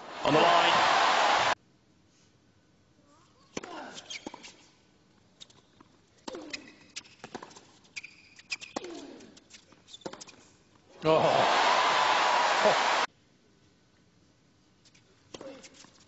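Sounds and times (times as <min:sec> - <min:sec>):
shoe squeaks: 0:04.0 - 0:04.6, 0:06.4 - 0:10.4.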